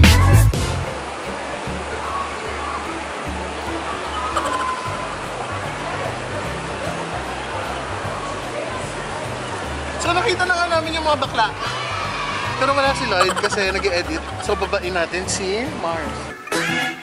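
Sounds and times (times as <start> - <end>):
background music bassline: 0.0 - 1.8, 3.0 - 17.0.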